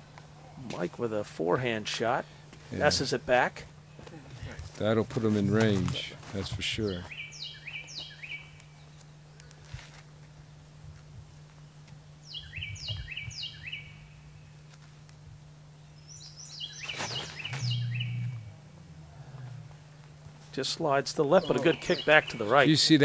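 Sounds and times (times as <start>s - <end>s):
steady low hum: 0.0s - 23.0s
songbird whistling: 7.1s - 8.9s, 12.2s - 14.2s, 15.9s - 18.6s, 21.4s - 22.6s
rustling: 16.8s - 20.6s
muffled low rumble: 17.1s - 20.5s.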